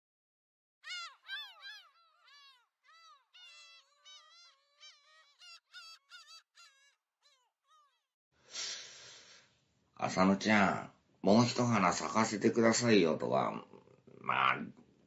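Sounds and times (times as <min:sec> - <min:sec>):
bird calling in rapid notes: 0:00.8 - 0:08.0.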